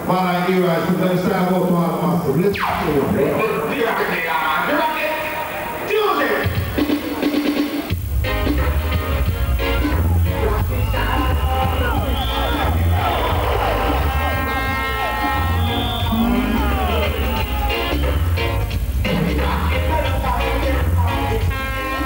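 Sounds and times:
reggae through a sound system: 0.0s - 22.0s
deep bass line: 7.9s - 22.0s
person singing: 13.6s - 18.0s, 19.0s - 22.0s.

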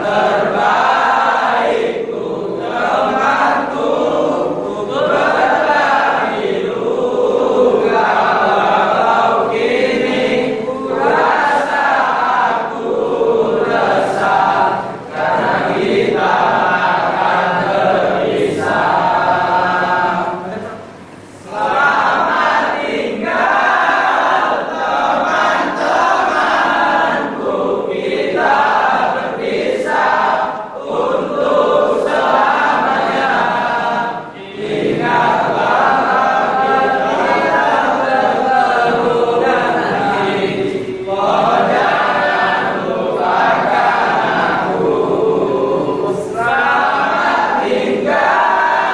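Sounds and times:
young men singing in unison: 0.0s - 48.9s.

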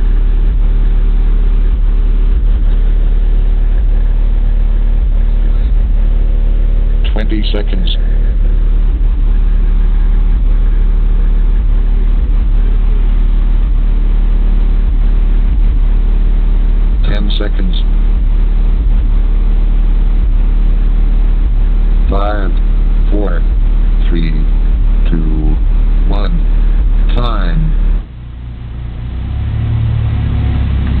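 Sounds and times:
low hum: 0.0s - 31.0s
subwoofers playing deep bass tone: 0.0s - 31.0s.

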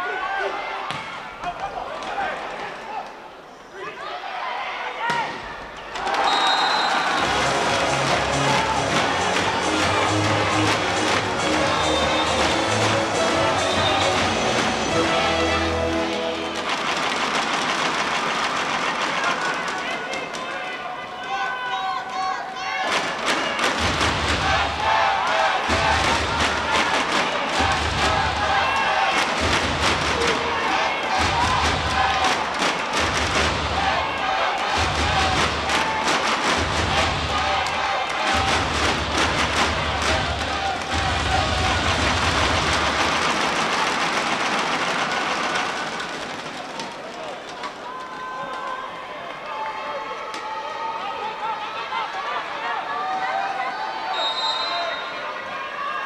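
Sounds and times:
crowd noise in hall: 0.0s - 56.0s
music over pa: 7.2s - 17.6s, 23.8s - 45.1s
heavy beat with rapid clattering: 23.6s - 46.3s.

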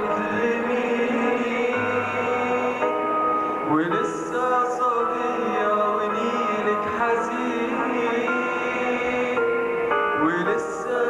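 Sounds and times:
band playing held chords: 0.0s - 11.0s.

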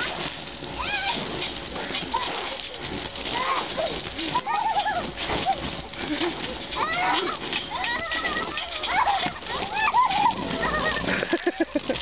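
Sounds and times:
children squealing and laughing: 0.0s - 12.0s
garden hose spraying water: 0.0s - 12.0s.

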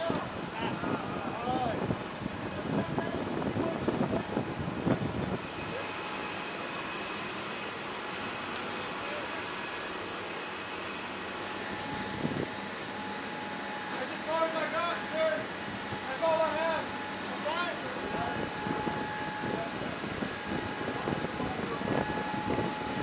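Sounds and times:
aircraft turbine whine: 0.0s - 23.0s
people talking indistinctly: 13.8s - 22.9s.

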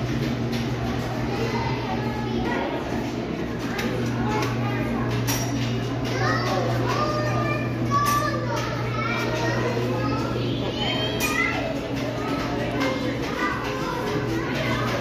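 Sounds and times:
children chattering and calling: 0.0s - 15.0s.

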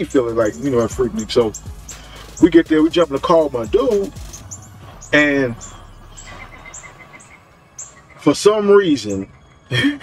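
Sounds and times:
fast-pulsing trill: 0.0s - 9.4s.

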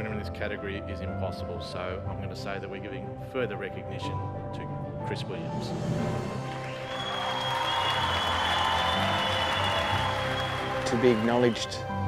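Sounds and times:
background music: 0.0s - 12.0s
audience applauding: 6.2s - 12.0s.

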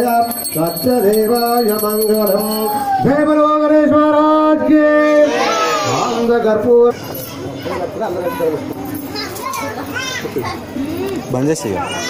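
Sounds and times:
crowd chatter: 0.0s - 12.0s
children calling out: 5.2s - 6.2s, 7.0s - 12.0s.

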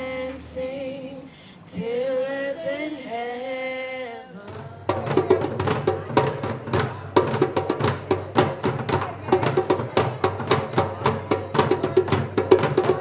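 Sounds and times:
hand drum ensemble playing: 4.5s - 13.0s.

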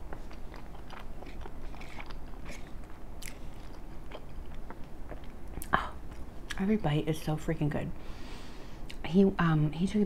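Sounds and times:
wet chewing mouth sounds: 0.0s - 6.6s.

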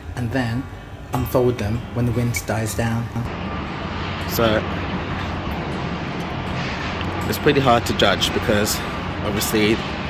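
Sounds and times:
low city hum: 0.0s - 10.0s
wind rushing: 3.3s - 10.0s.

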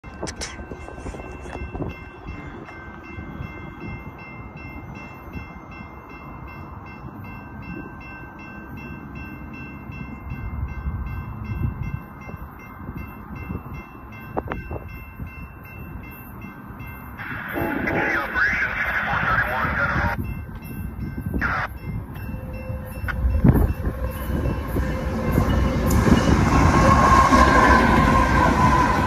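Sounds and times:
distant train rumble: 0.0s - 29.0s
high ringing tone: 0.1s - 18.4s, 19.3s - 29.0s.

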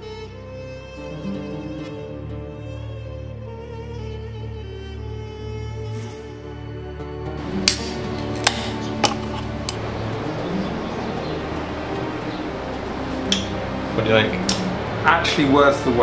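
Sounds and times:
background music: 0.0s - 16.0s.

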